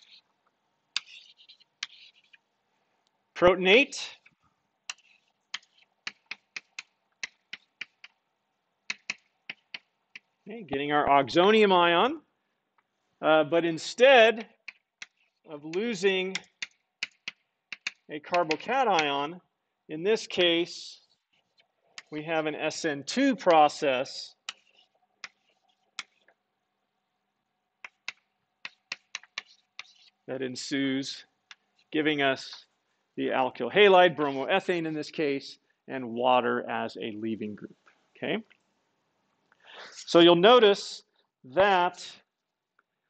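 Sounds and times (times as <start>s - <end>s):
chalk tapping on a blackboard: 1.0s - 2.4s, 4.9s - 8.2s, 8.9s - 10.4s, 14.4s - 19.1s, 24.4s - 26.2s, 27.8s - 30.2s.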